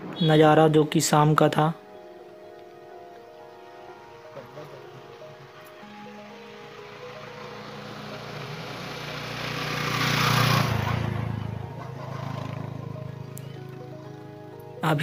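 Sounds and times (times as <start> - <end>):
soft background music: 0.0 - 15.0
motorcycle passing: 4.6 - 14.8.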